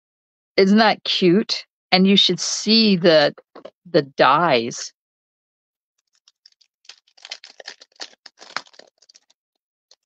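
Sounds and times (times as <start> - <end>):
plastic packaging crinkling: 6.0 - 10.0.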